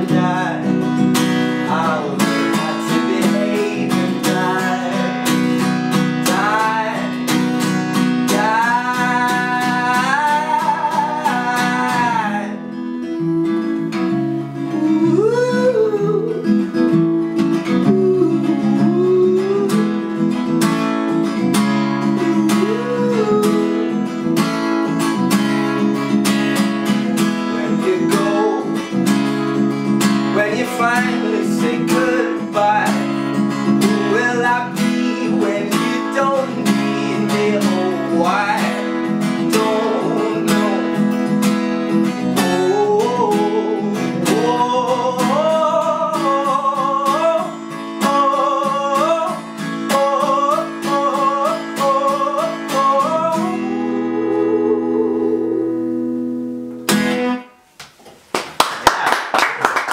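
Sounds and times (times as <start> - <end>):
man singing: 0.0 - 13.7, 14.4 - 20.6, 21.2 - 24.3, 26.9 - 56.1
acoustic guitar strumming: 0.0 - 57.8.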